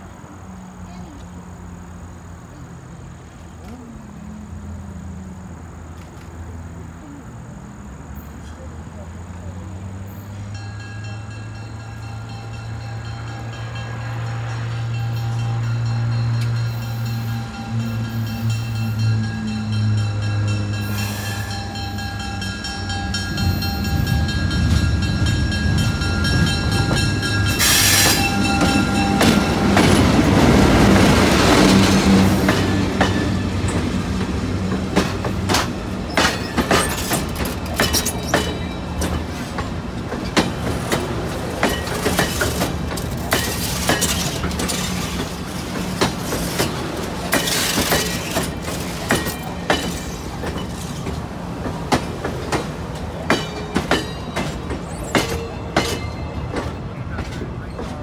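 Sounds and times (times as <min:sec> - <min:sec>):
diesel locomotive engine drone: 0:00.0 - 0:58.0
train wheels clacking over rail joints: 0:10.4 - 0:58.0.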